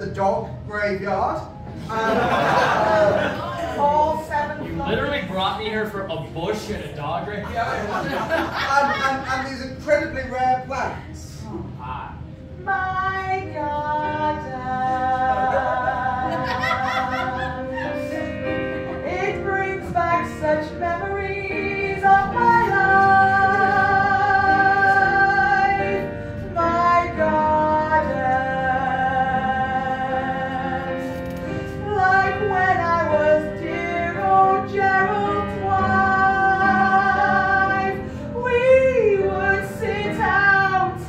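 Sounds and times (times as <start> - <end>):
musical accompaniment: 11.4 - 41.0
woman singing: 12.6 - 31.0, 31.7 - 41.0.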